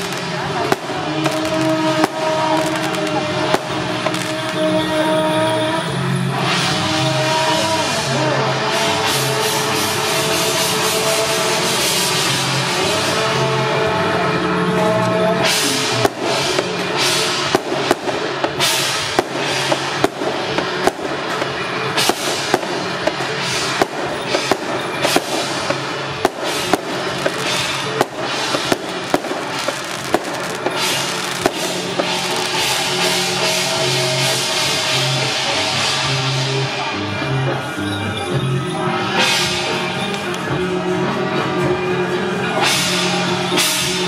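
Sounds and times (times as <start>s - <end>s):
firecracker bangs: 0.0s - 14.8s, 15.4s - 36.9s.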